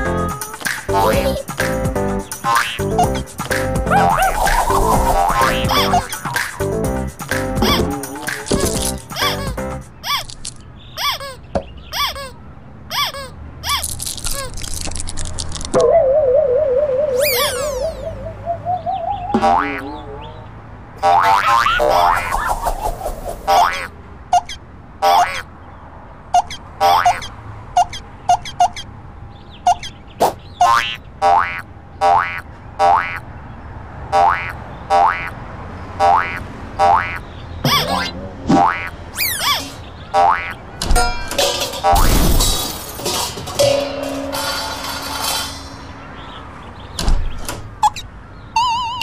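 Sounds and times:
gliding tones: 3.9s - 6.5s.

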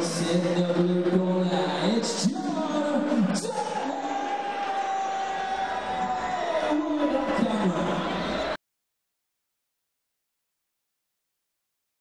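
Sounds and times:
murmuring crowd: 0.0s - 8.6s
announcer over public address: 6.4s - 8.2s.

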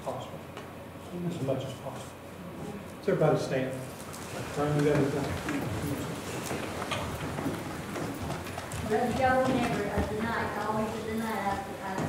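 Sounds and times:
shuffling footsteps of crowd: 3.8s - 12.0s.

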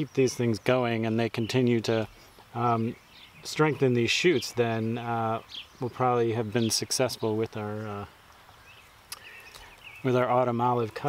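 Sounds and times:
distant bird chirping: 0.0s - 11.0s.

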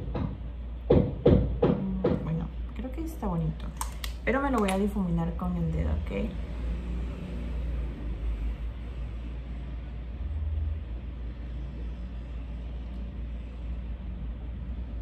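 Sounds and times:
low background rumble: 0.0s - 15.0s.

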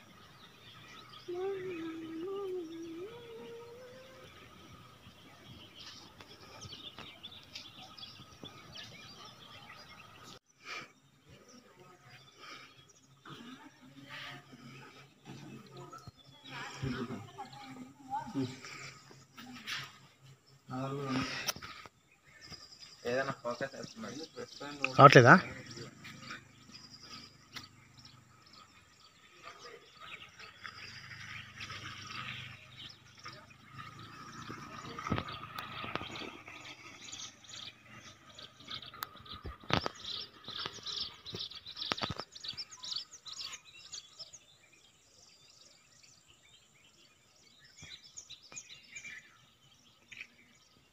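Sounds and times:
birds chirping: 0.0s - 50.9s
faint outdoor ambience: 0.0s - 50.9s.

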